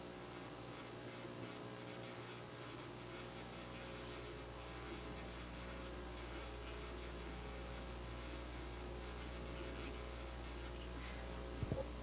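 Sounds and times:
faint electrical hum: 0.0s - 12.0s
scratching and rustling: 0.4s - 12.0s.

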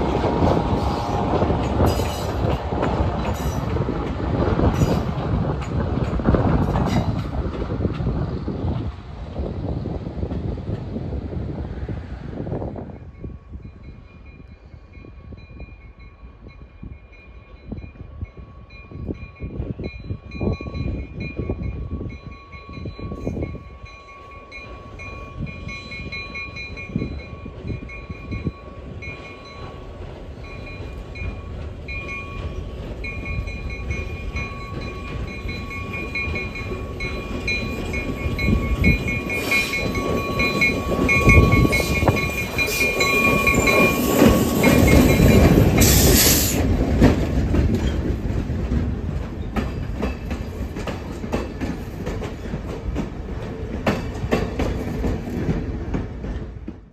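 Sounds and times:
diesel locomotive passing: 0.0s - 56.9s
train wheels on rails: 0.0s - 56.9s.

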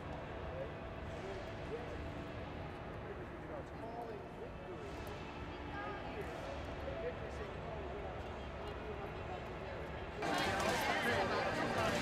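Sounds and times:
indistinct chatter: 3.1s - 12.0s.

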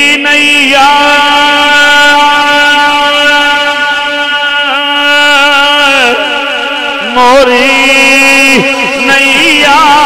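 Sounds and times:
man singing devotional refrain: 0.0s - 10.0s.

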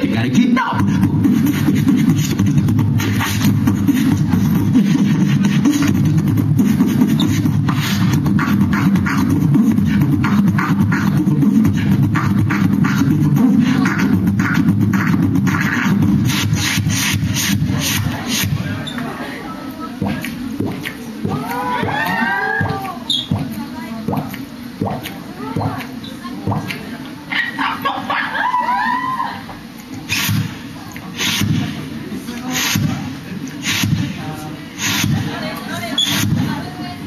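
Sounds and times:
person beatboxing: 0.0s - 27.6s, 29.9s - 36.7s.

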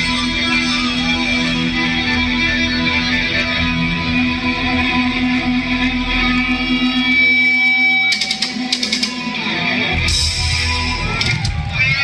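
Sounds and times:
electric guitar sustained notes: 0.0s - 12.0s
drums and cymbals hits: 8.0s - 9.4s, 10.0s - 12.0s.

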